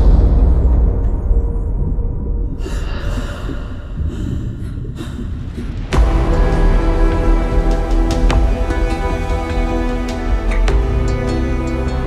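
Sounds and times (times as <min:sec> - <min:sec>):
low rumbling drone: 0:00.0 - 0:12.0
person gasping breaths: 0:02.6 - 0:06.0
loud music: 0:06.0 - 0:12.0.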